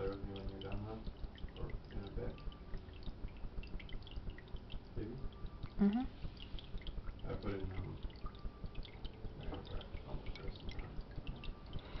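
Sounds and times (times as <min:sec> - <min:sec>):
water dripping and trickling: 0:00.0 - 0:12.0.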